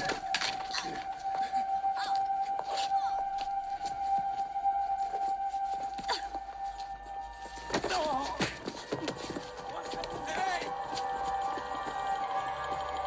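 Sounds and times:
knocks and scuffing of struggle: 7.4 - 11.0.

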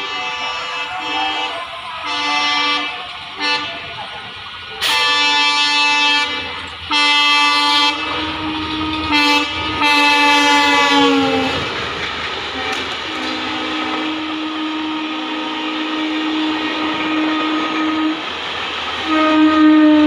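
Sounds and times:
locomotive horn blasts: 0.0 - 4.0, 4.8 - 11.7, 12.6 - 18.3, 19.0 - 20.0.

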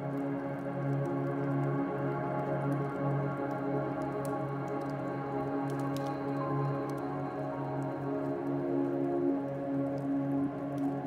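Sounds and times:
slow soft music: 0.0 - 11.0
wood fire crackling: 2.5 - 11.0.

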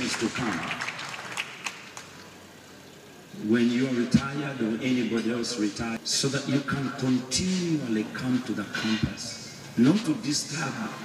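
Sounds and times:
scattered handclaps: 0.0 - 2.2
hall ambience: 3.8 - 11.0.

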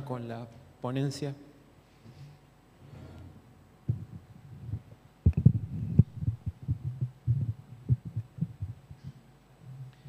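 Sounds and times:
microphone handling thumps: 3.9 - 9.2.

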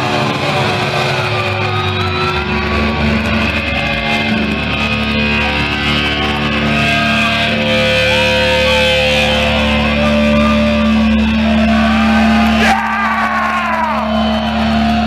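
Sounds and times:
distorted electric guitars droning: 0.0 - 15.0
sliding guitar notes wailing: 0.0 - 15.0.

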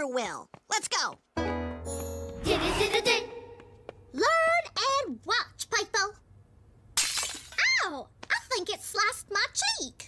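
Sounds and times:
glass shattering crash: 7.0 - 7.7.

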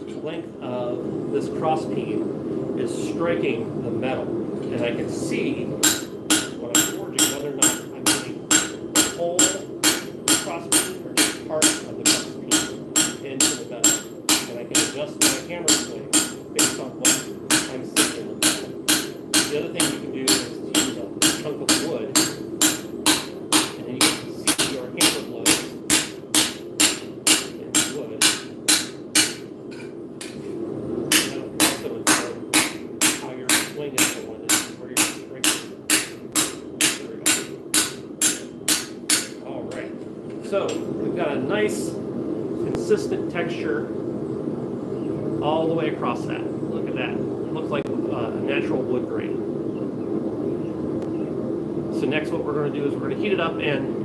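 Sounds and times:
hammer ringing on steel plate: 5.8 - 29.5, 31.1 - 39.4.

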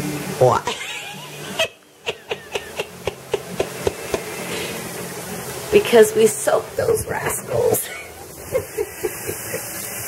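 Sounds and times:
woman's stifled giggle: 0.7 - 4.0, 8.0 - 9.8.

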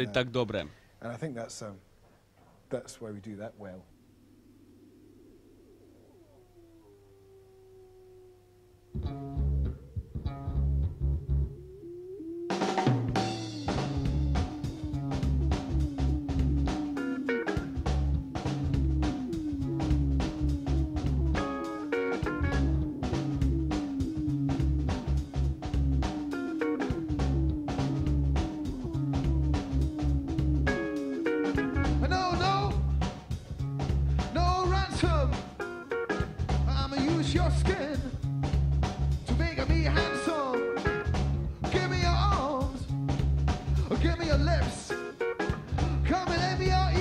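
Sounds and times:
live band playing: 12.6 - 47.0
bass and kick drum: 13.0 - 16.8, 17.6 - 21.4, 22.3 - 26.2, 26.9 - 30.8, 31.6 - 35.5, 36.2 - 40.1, 41.1 - 44.8, 45.5 - 47.0.

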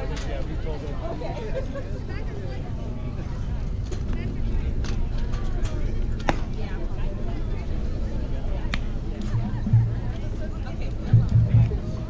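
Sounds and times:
distant voices of players: 0.0 - 12.0
steady low rumble: 2.6 - 12.0.

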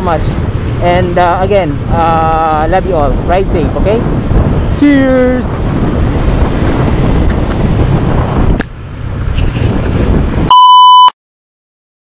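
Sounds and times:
wind rushing over microphone: 0.0 - 10.8
electronic beep: 10.5 - 11.1.

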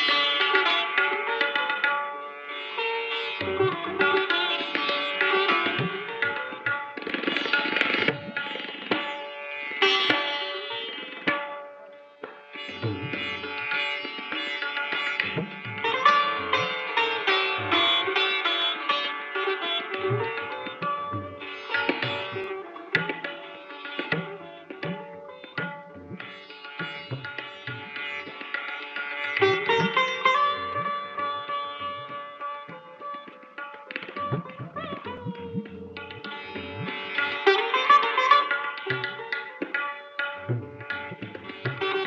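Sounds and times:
sitar playing: 0.0 - 42.0
tabla strokes: 0.0 - 42.0.

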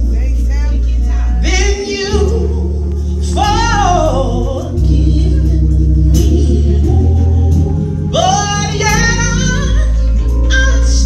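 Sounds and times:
low accompaniment chords: 0.0 - 11.0
woman singing gospel: 0.0 - 11.0.

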